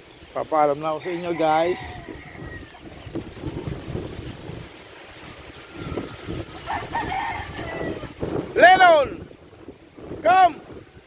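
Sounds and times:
wind rumbling on microphone: 0.0 - 11.0
rooster crowing faintly: 1.0 - 3.1, 5.2 - 8.2.

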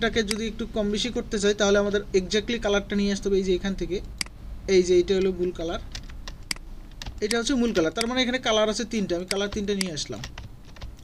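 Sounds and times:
person talking: 0.0 - 6.0, 7.1 - 10.4
keyboard and mouse clicks: 0.2 - 0.5, 4.0 - 4.4, 5.1 - 8.4, 9.1 - 11.0.

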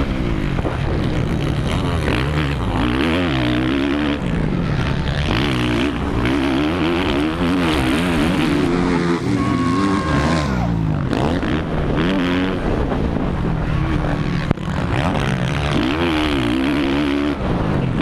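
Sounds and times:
motocross bike engine revving: 0.0 - 18.0
wind rush: 8.4 - 14.9.

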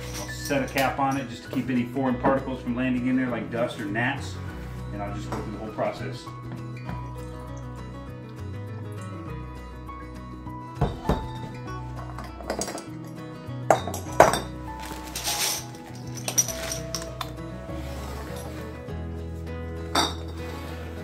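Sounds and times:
glass bottles clinking: 0.0 - 2.6, 5.2 - 6.0, 10.7 - 18.8, 19.9 - 20.5
background music: 0.0 - 21.0.

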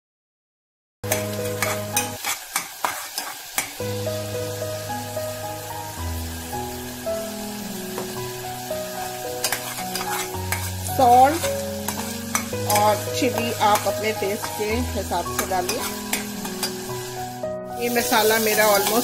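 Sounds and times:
spatula scraping steel pot: 1.1 - 3.7, 9.0 - 14.7, 15.4 - 16.9
paste sizzling in oil: 1.1 - 19.0
background music: 3.8 - 19.0.

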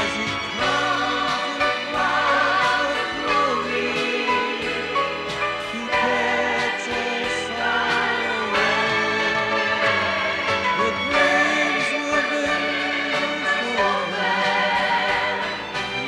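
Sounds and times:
group singing: 0.0 - 16.0
instrumental accompaniment: 0.0 - 16.0.

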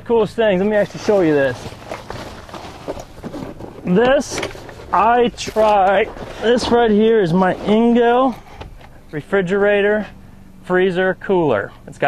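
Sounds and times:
faint handling sounds: 0.6 - 9.2.

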